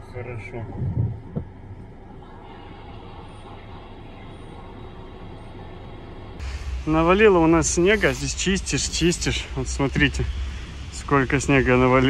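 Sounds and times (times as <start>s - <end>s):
car cabin hum: 0.2s - 2.2s
wind buffeting microphone: 0.7s - 1.6s.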